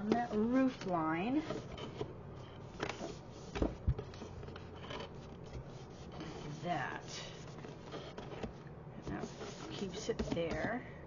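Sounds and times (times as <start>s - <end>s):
hands rubbing paper on cardboard: 5.1s - 8.4s, 9.0s - 10.6s.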